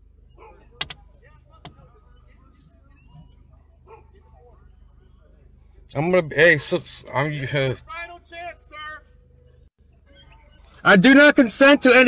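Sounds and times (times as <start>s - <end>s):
faint voices: 0.1s - 12.0s
sharp clicks inside car: 0.8s - 1.0s.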